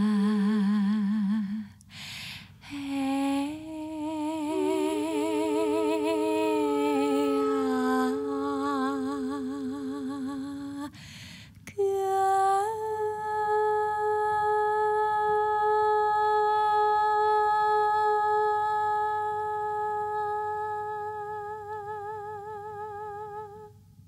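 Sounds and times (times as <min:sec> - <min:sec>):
woman breathing: 0:01.7 - 0:02.8, 0:10.9 - 0:11.7
woman singing held notes: 0:02.7 - 0:11.0.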